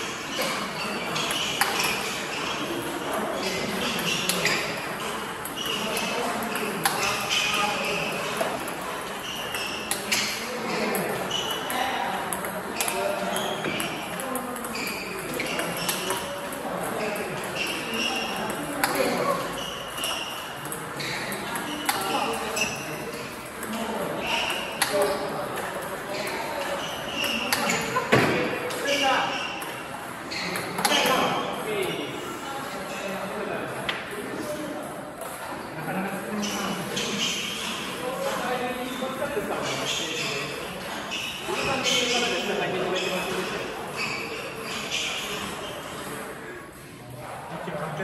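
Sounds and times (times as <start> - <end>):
ping pong ball hitting paddle: 9.4 - 22.8
ping pong ball bouncing on table: 10.9 - 22.8.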